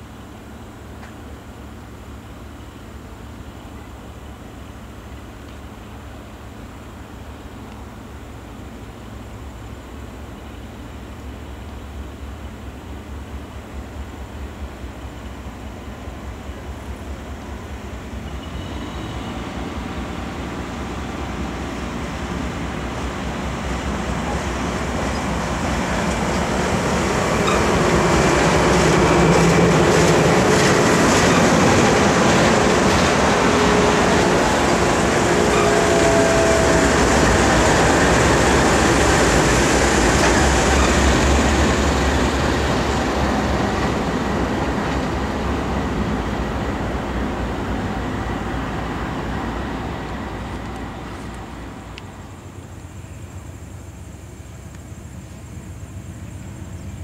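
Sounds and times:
diesel locomotive engine drone: 0.0 - 57.0
train rumble and wheel clatter: 0.0 - 57.0.

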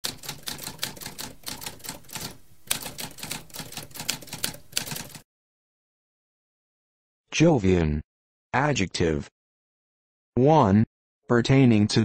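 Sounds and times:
typewriter keystroke clacks: 0.0 - 5.2.

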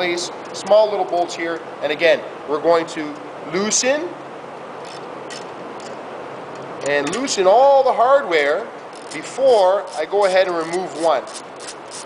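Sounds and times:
workshop background noise: 0.0 - 12.0
hand wrench clicks: 8.9 - 9.3.

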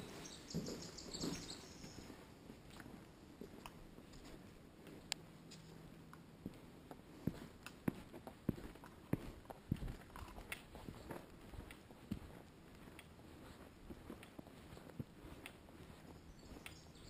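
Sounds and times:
footsteps on dirt trail: 0.0 - 17.0.

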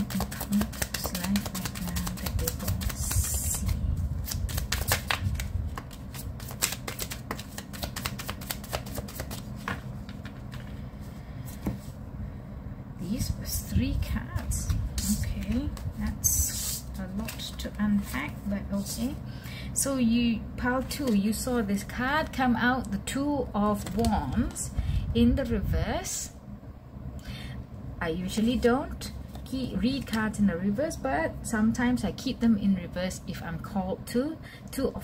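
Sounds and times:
cards being shuffled: 0.0 - 10.8, 14.4 - 19.2, 23.7 - 24.6.

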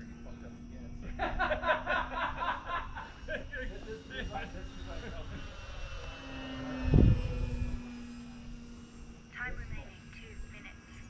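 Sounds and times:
voices chattering and laughing: 0.0 - 6.3
model plane motor humming: 0.0 - 11.0.

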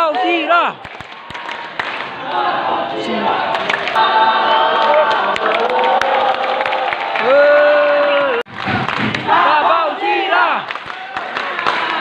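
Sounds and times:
crowd chanting and singing: 0.0 - 7.2, 8.6 - 12.0.

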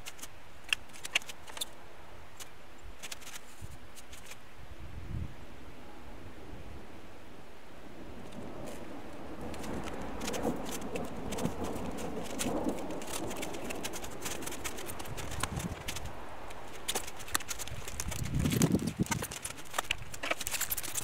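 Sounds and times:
snow crunching: 7.9 - 21.0.

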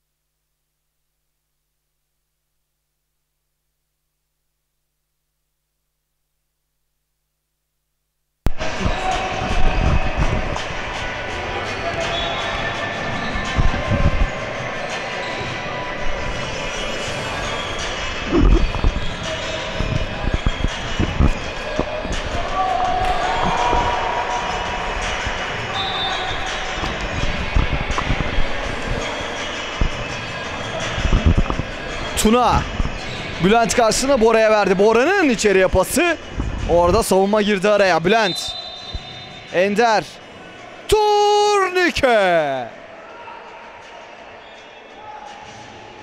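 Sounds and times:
echoing indistinct voices: 8.5 - 38.4.

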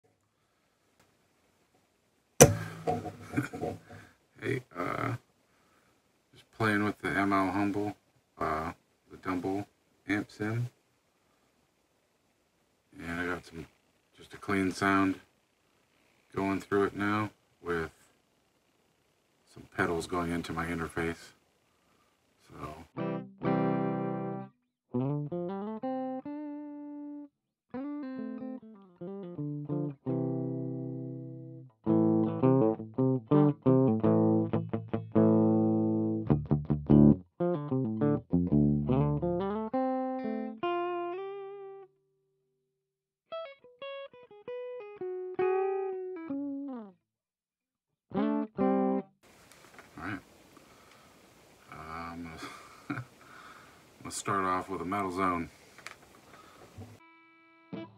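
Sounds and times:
clean electric guitar: 2.4 - 4.1, 22.8 - 41.9, 43.3 - 47.0, 48.1 - 49.1, 56.8 - 57.9
steady hiss: 12.9 - 18.2, 19.4 - 22.9, 49.2 - 57.0.

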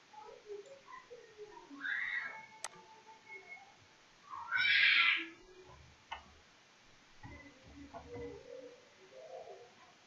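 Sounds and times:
rising animal cry: 4.3 - 5.3.

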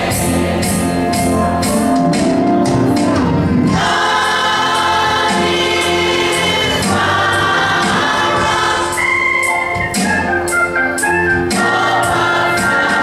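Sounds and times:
gospel choir singing chords: 0.0 - 13.0.

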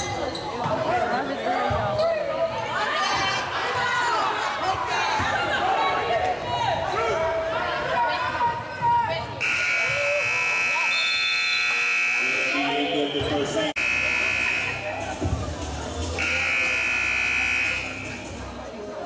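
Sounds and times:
voices in a gym: 0.0 - 19.0
scoreboard buzzer blasts: 9.4 - 12.8, 13.8 - 14.9, 16.2 - 18.2.

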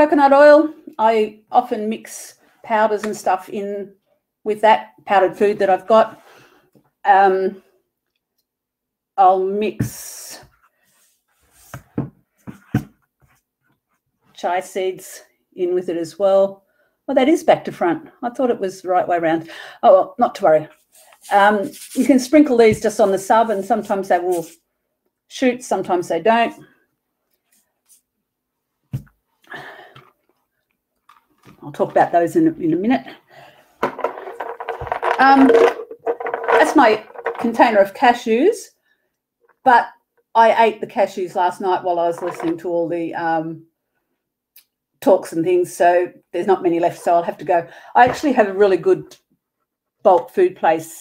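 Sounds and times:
plastic jars knocking on wooden table: 33.8 - 37.5
plastic containers clicking and rattling: 33.8 - 37.6, 42.2 - 42.6.

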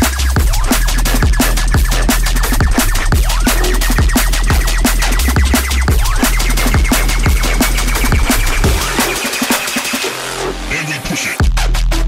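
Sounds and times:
noisy engine-like synth: 2.5 - 11.4
low bass swell: 3.2 - 9.4
gliding bass note: 3.5 - 9.4.

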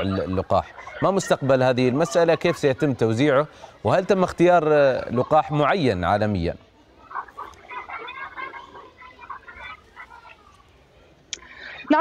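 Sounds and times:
children calling and chattering: 0.0 - 12.0.

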